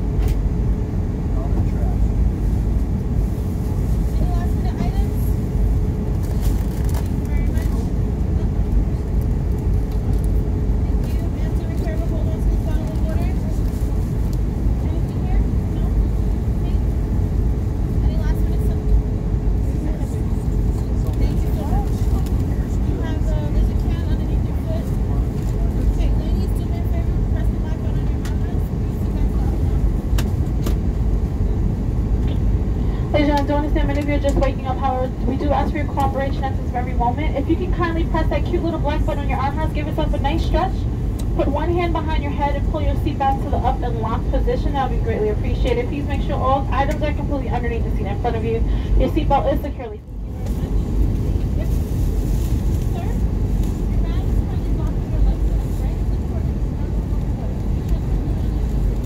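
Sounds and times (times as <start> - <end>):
airliner cabin engine rush: 0.0 - 59.0
faint steady hum: 0.0 - 59.0.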